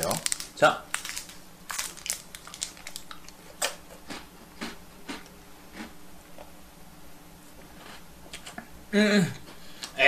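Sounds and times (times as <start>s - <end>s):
packaging crinkling: 0.0s - 3.8s
sharp packaging crackles: 0.0s - 3.8s.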